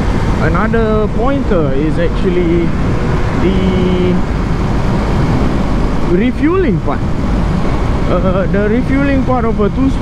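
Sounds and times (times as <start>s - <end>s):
road noise: 0.0s - 10.0s
wind rush: 0.0s - 10.0s.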